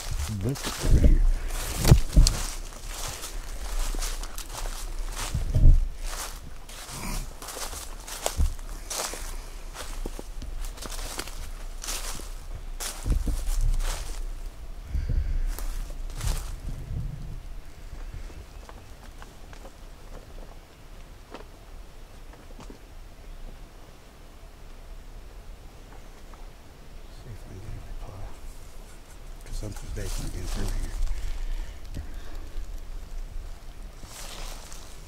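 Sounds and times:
low thumps: 0.0 - 7.2, 12.8 - 14.2
footsteps crunching dry leaves: 0.0 - 14.6, 15.2 - 16.8, 28.2 - 35.0
brush rustling: 0.0 - 20.6, 27.3 - 35.0.

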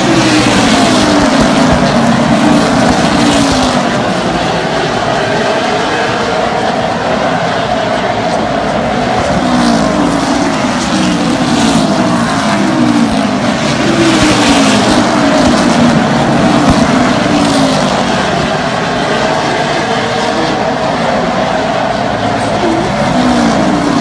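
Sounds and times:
race car engines passing: 0.0 - 24.0.

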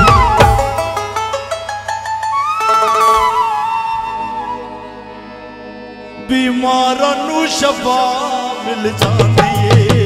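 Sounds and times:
folk melody with pitch bends: 0.0 - 9.0.

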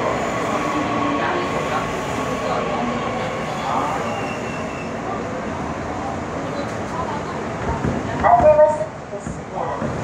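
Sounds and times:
train wheel and rail noise: 0.0 - 10.0.

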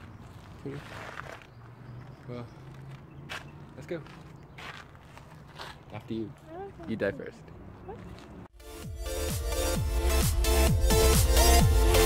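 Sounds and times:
footsteps on paved path: 0.0 - 8.5.

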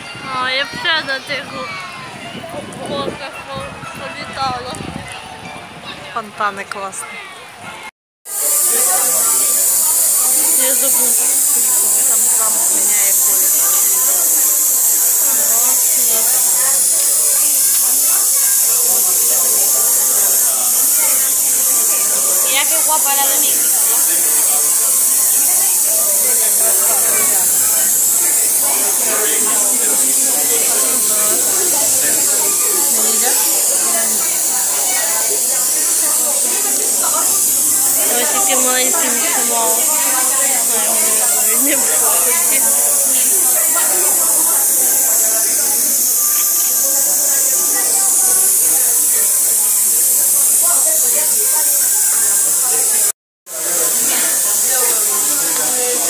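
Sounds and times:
murmur of voices: 0.0 - 56.0
torch flame hissing: 8.2 - 56.0.

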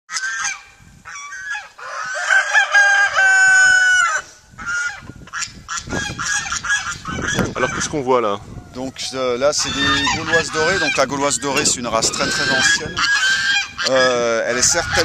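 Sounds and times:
chickens clucking: 0.1 - 15.0
rooster crowing: 1.2 - 5.0.

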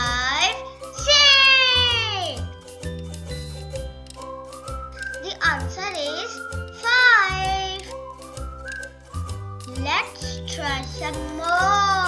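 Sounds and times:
upbeat children's music: 0.0 - 12.0.

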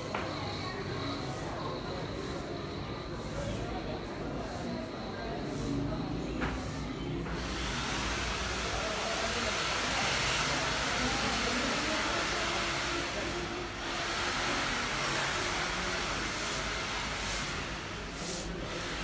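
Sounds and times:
faint voices: 0.0 - 19.0.

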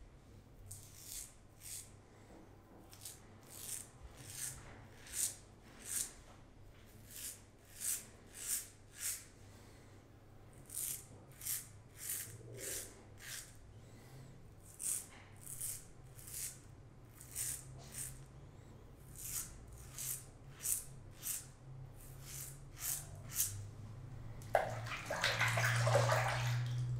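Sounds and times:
razor scraping stubble: 7.1 - 9.3, 10.7 - 13.6, 14.6 - 18.2, 19.1 - 21.5.

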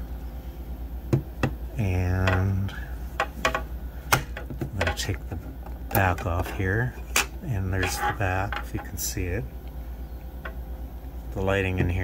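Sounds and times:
plastic radio cabinet clicks: 3.5 - 6.5.

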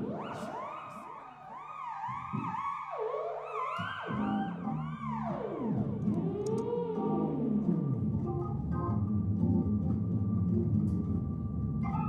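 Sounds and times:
synthesizer lead with pitch glides: 0.0 - 12.0
low synthesizer notes: 3.6 - 12.0.

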